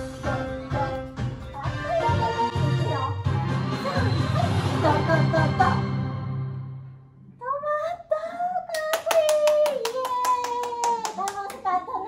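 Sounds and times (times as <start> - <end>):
hand claps: 8.7 - 11.7.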